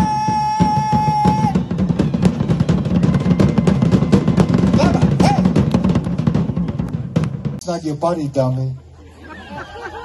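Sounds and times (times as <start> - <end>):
fast live drumming: 0.0 - 8.1.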